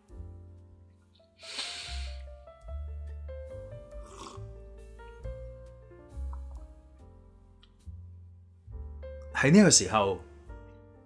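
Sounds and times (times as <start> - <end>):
slow music with deep bass: 0.0 - 11.0
slurp from a cup: 1.4 - 2.2, 4.0 - 4.5.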